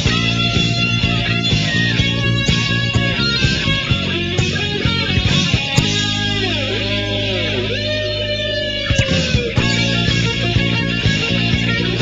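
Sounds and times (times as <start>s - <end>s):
bass and drums: 0.0s - 12.0s
electric guitar lead: 0.0s - 12.0s.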